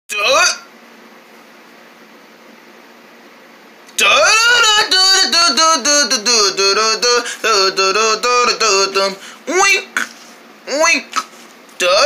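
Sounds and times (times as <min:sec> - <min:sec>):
room tone hiss: 0:00.1 - 0:12.0
faint low hum: 0:03.7 - 0:12.0.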